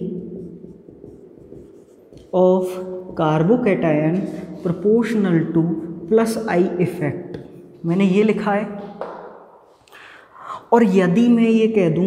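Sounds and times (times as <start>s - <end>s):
marker pen scratching on whiteboard: 0.0s - 3.5s.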